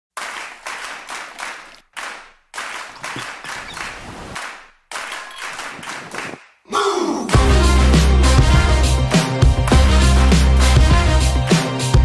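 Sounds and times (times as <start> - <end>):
crowd clapping: 0.1 - 6.5.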